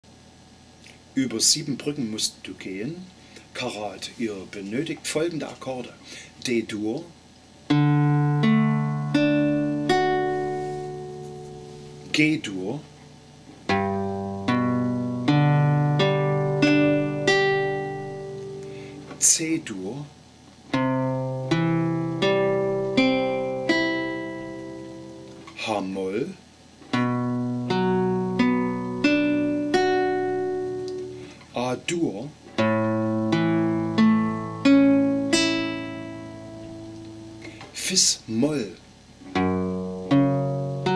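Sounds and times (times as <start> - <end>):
classical guitar arpeggio: 7.6 - 12.7, 13.6 - 19.7, 20.7 - 25.7, 26.9 - 31.4, 32.5 - 37.6, 39.2 - 40.9.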